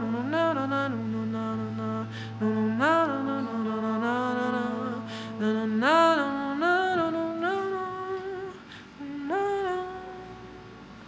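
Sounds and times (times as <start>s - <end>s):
woman singing wordless notes: 0.0s - 11.0s.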